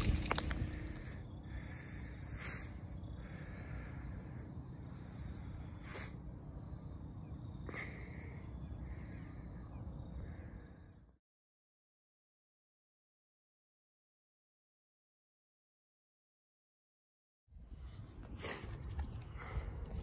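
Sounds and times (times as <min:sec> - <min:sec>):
insects buzzing: 0:00.0 - 0:11.1
faint low rumble: 0:17.5 - 0:20.0.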